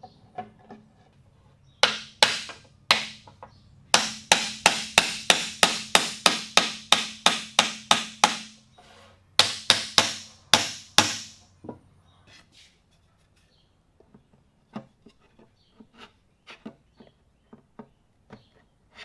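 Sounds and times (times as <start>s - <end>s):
hammer striking wooden block: 1.8s - 8.6s, 9.4s - 11.4s.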